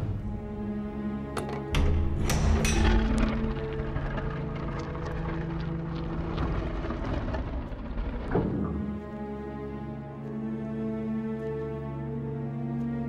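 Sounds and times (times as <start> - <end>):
background music: 0.0 - 13.0
stone door grinding open: 1.3 - 9.2.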